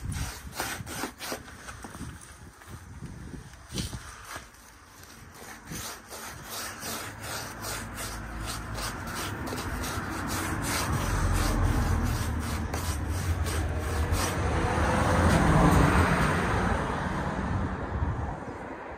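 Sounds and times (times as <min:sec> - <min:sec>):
paintbrush scrubbing concrete: 0:00.0 - 0:02.4, 0:03.7 - 0:16.0.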